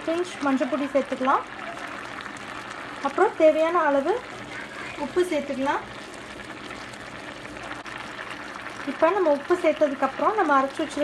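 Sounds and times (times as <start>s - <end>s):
vegetables simmering in a pan: 0.0s - 11.0s.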